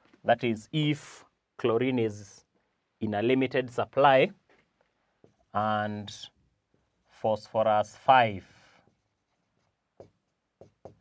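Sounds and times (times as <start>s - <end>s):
marker pen writing on whiteboard: 4.4s - 5.6s, 8.4s - 11.0s.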